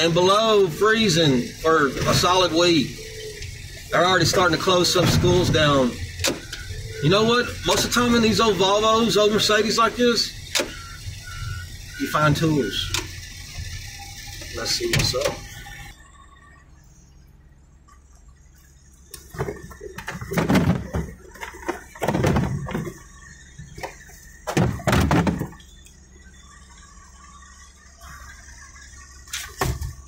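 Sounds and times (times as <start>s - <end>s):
rummaging in a car trunk: 19.2s - 25.7s.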